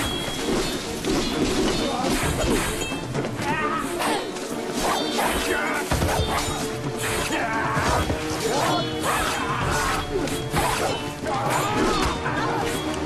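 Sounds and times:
background music: 0:00.0 - 0:13.0
fighters shouting: 0:03.4 - 0:13.0.

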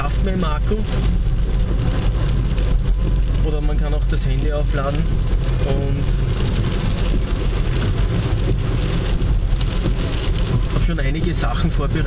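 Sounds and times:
car engine and road rumble: 0:00.0 - 0:12.0
tyres hissing on wet road: 0:00.0 - 0:12.0.

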